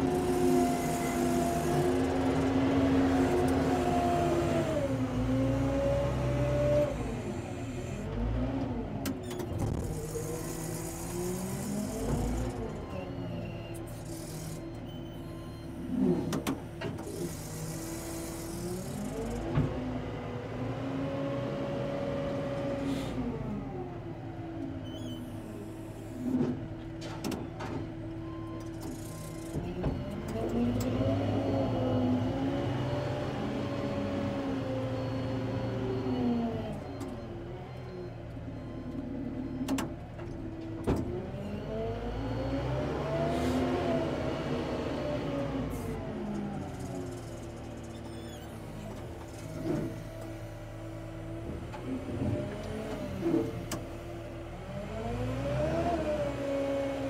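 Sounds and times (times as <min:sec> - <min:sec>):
clunks: 0:26.2 - 0:30.9
diesel engine revving: 0:41.2 - 0:47.7, 0:48.6 - 0:57.0.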